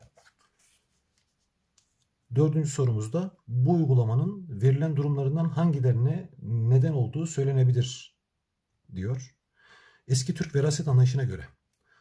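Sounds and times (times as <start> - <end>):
paper rustling: 0.0 - 2.1.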